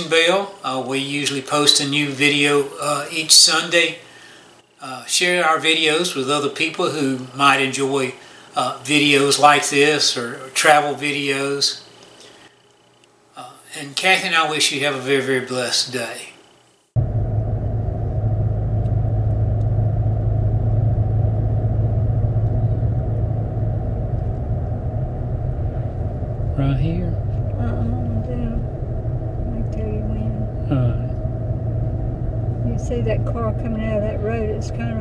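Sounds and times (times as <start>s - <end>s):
car driving on paved road: 17.0s - 35.0s.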